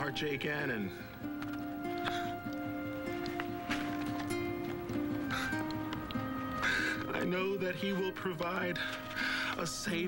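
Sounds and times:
soft drama score: 0.0 - 10.0.

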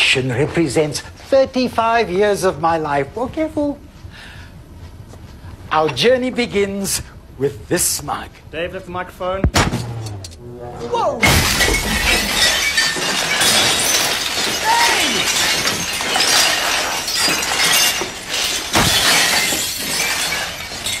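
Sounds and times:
ceramic mugs smashing: 11.2 - 21.0.

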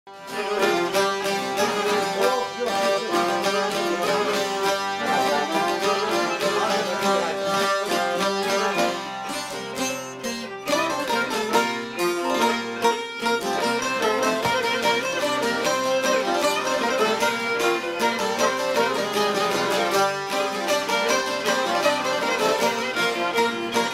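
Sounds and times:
violin: 0.0 - 23.9
plucked lutes: 0.1 - 23.9.

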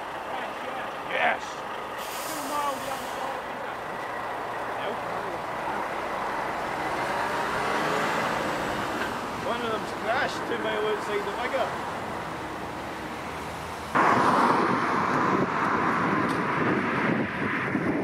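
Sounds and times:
lorry pulling away: 0.0 - 16.5
cars driving past: 0.0 - 18.0
air brakes hissing: 1.9 - 3.6.

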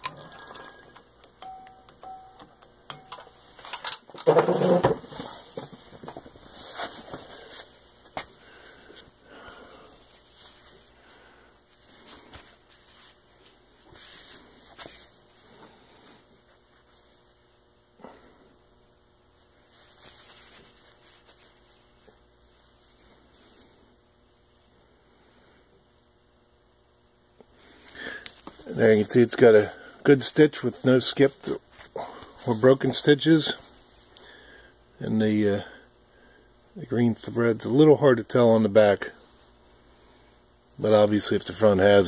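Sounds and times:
denim rustling: 19.6 - 23.4.

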